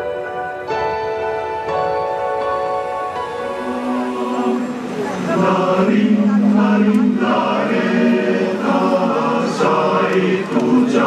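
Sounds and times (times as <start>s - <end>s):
choir singing long held notes: 3.1s - 11.0s.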